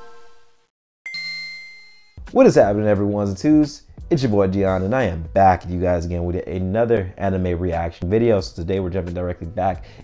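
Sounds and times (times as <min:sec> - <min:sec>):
bell-like chimes ringing: 0:01.1 - 0:02.2.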